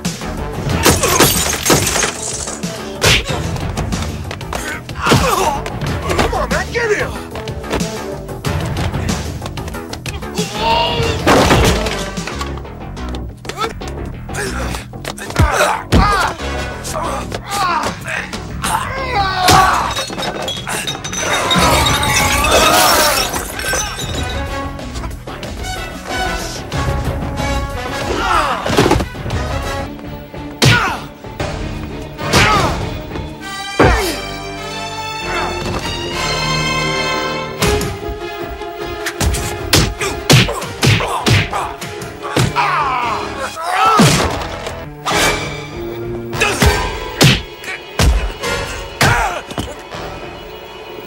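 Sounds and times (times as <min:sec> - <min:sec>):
film score music: 0:00.0 - 0:51.0
shattering crash: 0:11.2 - 0:12.2, 0:19.5 - 0:24.6
fight hits: 0:46.4 - 0:48.4.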